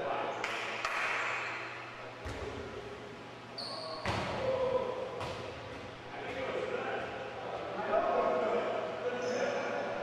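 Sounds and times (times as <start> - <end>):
indistinct voices in a gymnasium: 0.0 - 10.0.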